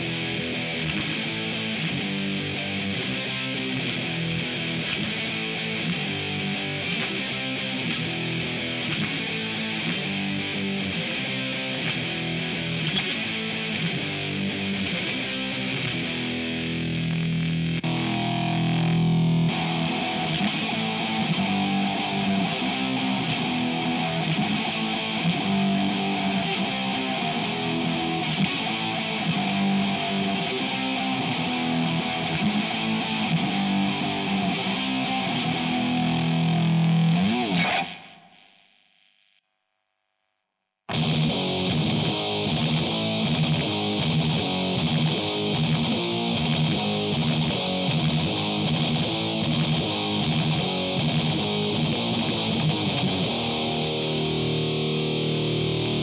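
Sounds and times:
distorted electric guitar riffing: 0:00.0 - 0:39.4, 0:40.9 - 0:56.0.

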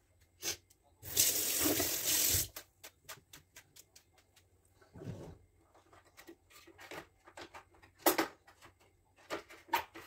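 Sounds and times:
water running from tap: 0:01.0 - 0:02.6.

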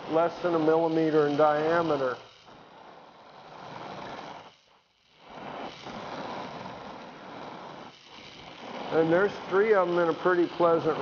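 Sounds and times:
torch flame hissing: 0:00.0 - 0:11.0.

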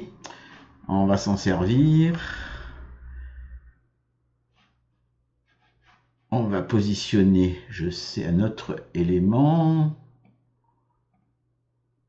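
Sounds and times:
man speaking: 0:00.9 - 0:02.7, 0:06.3 - 0:10.1.

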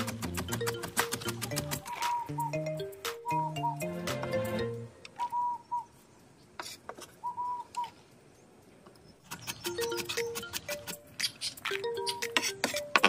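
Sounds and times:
light background music: 0:00.0 - 0:05.1, 0:09.7 - 0:13.0
whistle-like notes: 0:02.0 - 0:04.1.

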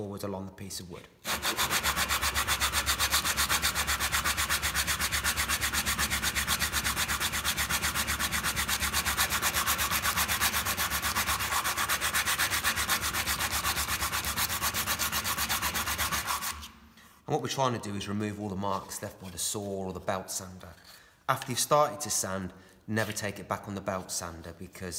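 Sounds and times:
sandpaper rasping on wood: 0:01.2 - 0:16.8.

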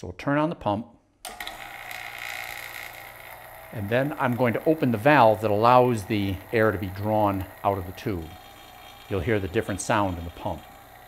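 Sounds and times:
vacuum pump running: 0:01.3 - 0:11.0.

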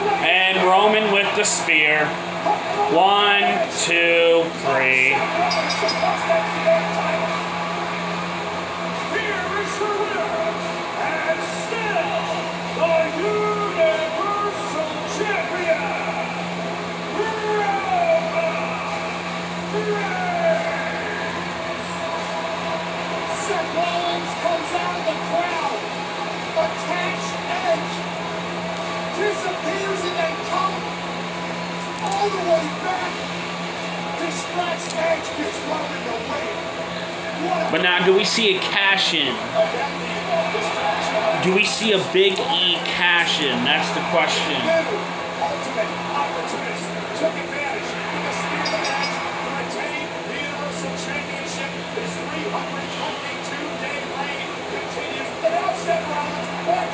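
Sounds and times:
commentators talking: 0:00.0 - 0:06.0, 0:36.9 - 0:46.4
broadcast background sound: 0:00.0 - 0:56.9.

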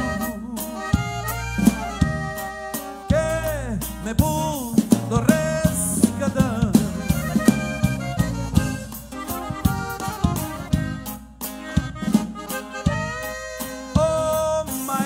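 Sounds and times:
person singing: 0:00.0 - 0:01.8, 0:02.7 - 0:07.6, 0:13.6 - 0:15.0
saxophone melody: 0:00.0 - 0:03.5, 0:06.8 - 0:14.6
drum kit beat: 0:00.0 - 0:15.0
electric bass: 0:00.0 - 0:15.0.

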